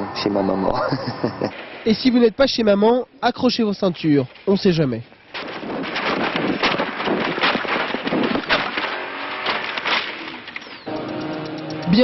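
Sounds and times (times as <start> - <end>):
knocks and bangs: 5.3 - 10.5
car crashing clattering and rattling: 5.3 - 10.8.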